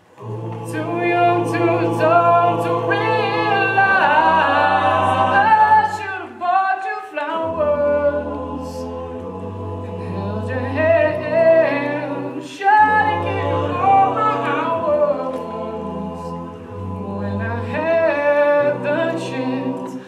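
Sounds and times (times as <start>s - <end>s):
male a cappella group singing: 0.0s - 20.0s
lead voice on a microphone: 0.2s - 8.5s.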